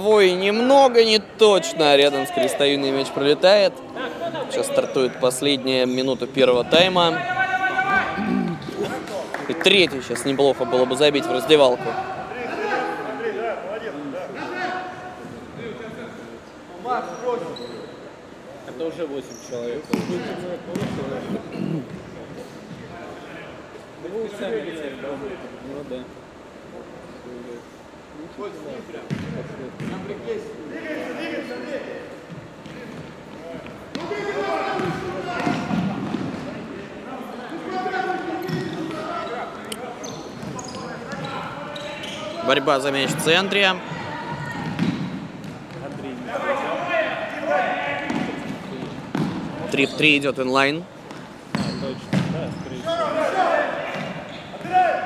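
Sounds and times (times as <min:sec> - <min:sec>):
men calling and talking: 0:00.0 - 0:55.0
players calling out: 0:05.8 - 0:13.4.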